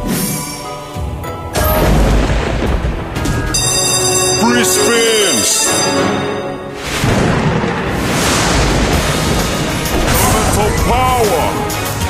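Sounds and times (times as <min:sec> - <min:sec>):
game music: 0:00.0 - 0:12.0
deep rumbling boom: 0:01.6 - 0:03.6, 0:07.0 - 0:12.0.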